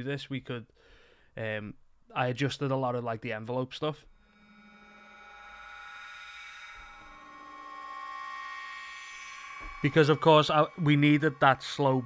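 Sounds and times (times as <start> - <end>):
bell-like synth drone: 4.2 - 12.0.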